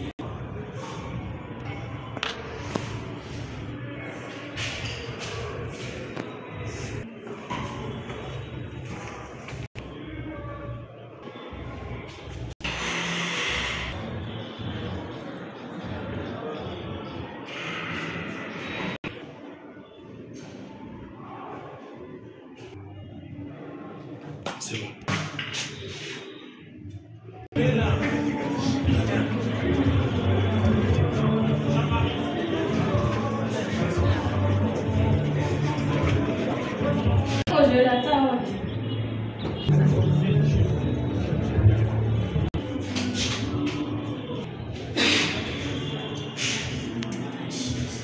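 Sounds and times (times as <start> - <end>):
room noise in a hall: 0.0 - 48.0
indistinct voices: 25.8 - 48.0.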